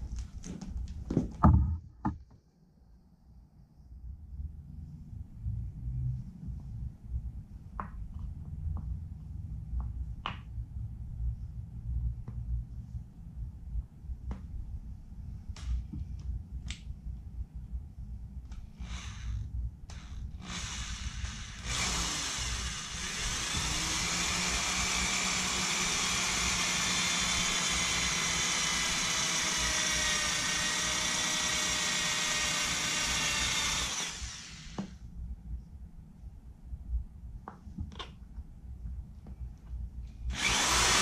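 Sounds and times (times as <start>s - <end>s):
electric drill whining: 18.8s - 35.0s, 40.3s - 41.0s.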